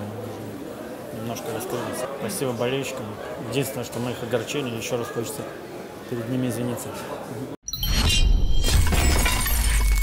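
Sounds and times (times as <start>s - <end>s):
glass shattering: 7.7s - 10.0s.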